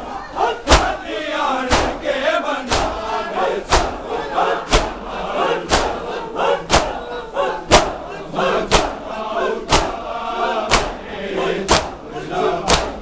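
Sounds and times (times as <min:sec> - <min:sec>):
crowd chanting: 0:00.0 - 0:13.0
hands slapping chests: 0:00.7 - 0:01.0, 0:01.7 - 0:02.0, 0:02.7 - 0:03.0, 0:03.6 - 0:04.0, 0:04.7 - 0:05.0, 0:05.7 - 0:06.0, 0:06.7 - 0:07.0, 0:07.7 - 0:08.0, 0:08.7 - 0:09.0, 0:09.7 - 0:10.0, 0:10.7 - 0:11.0, 0:11.7 - 0:12.0, 0:12.6 - 0:13.0.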